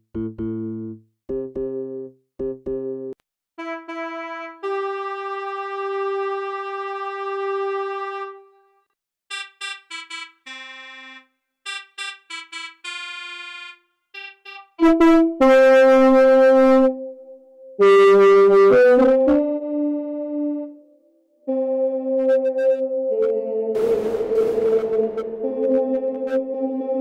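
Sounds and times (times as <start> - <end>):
synthesised piano notes: 21.5 - 27.0.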